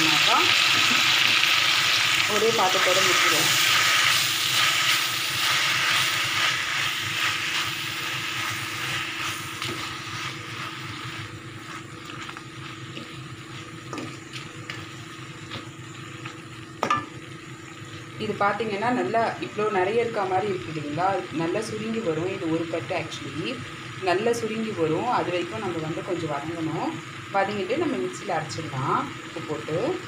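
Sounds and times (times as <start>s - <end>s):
leaves sizzling in oil: 0.0s - 30.0s
wooden spatula stirring: 3.6s - 16.4s.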